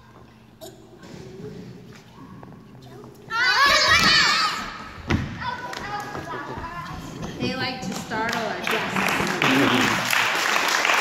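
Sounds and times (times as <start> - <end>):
young children shouting: 3.3 - 4.8.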